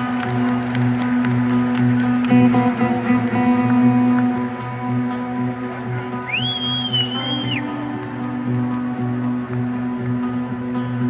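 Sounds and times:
live rock band music: 0:00.0 - 0:10.2
shrill whistle from crowd: 0:06.2 - 0:07.6.

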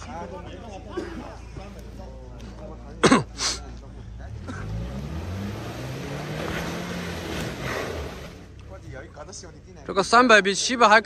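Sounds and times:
man coughing: 0:00.8 - 0:01.4, 0:03.0 - 0:03.7
suv engine revving: 0:04.1 - 0:09.0.

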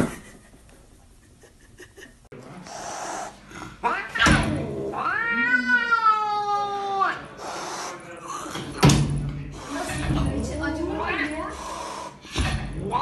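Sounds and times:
cat meowing: 0:04.9 - 0:07.2.

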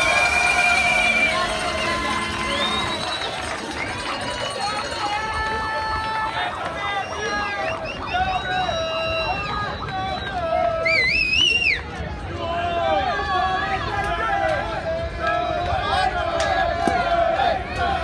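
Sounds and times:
crowd shouting and cheering: 0:00.0 - 0:18.0.

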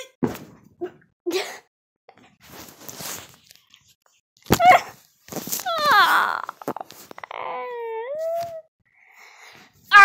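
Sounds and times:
girl groaning: 0:05.7 - 0:08.1.

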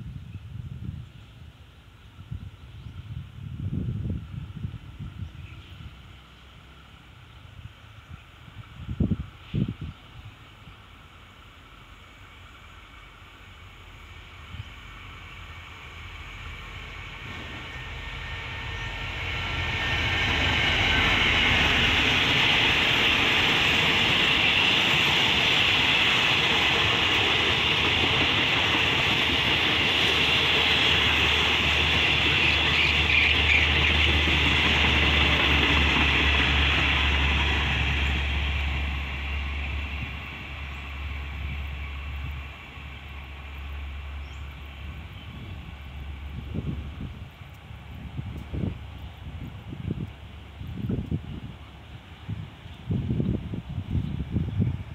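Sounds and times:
diesel locomotive engine: 0:00.0 - 0:54.9
train wheels on rails: 0:04.2 - 0:54.9.

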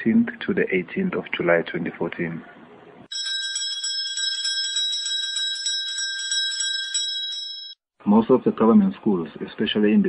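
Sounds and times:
electric school bell ringing: 0:03.1 - 0:07.8.

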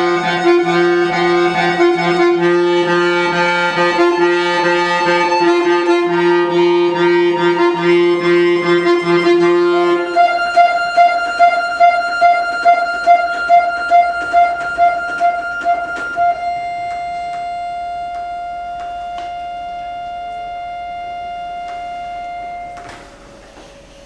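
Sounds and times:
button accordion high note: 0:00.0 - 0:23.4.

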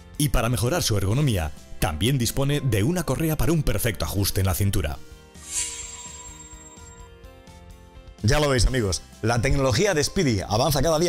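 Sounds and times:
background music held tones: 0:00.1 - 0:11.0
high shimmer: 0:05.4 - 0:07.1.

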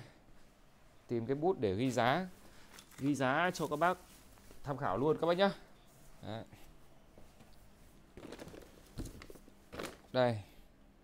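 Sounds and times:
plastic bag crinkling: 0:08.2 - 0:10.1.

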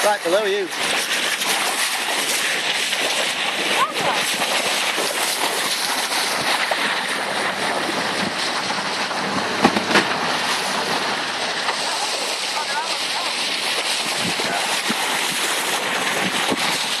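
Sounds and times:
water rushing along hull: 0:00.0 - 0:17.0.

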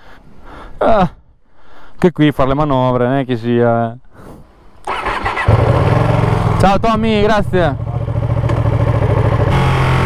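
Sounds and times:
motorcycle engine revving: 0:04.9 - 0:10.0.

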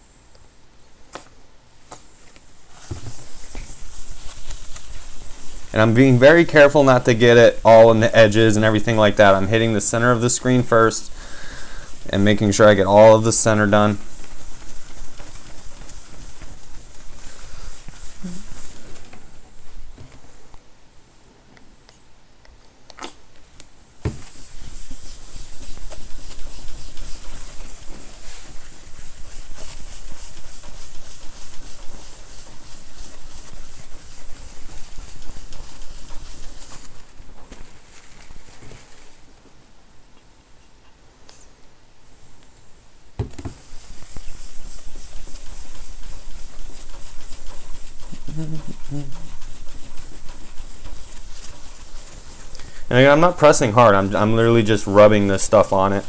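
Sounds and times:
paper towel scrubbing glass screen: 0:01.9 - 0:20.4, 0:24.0 - 0:39.3, 0:43.3 - 0:56.0.

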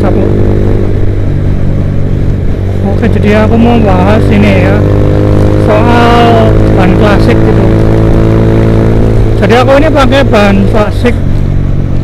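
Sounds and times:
motorcycle engine running: 0:00.0 - 0:12.0
road and wind noise: 0:00.0 - 0:12.0.

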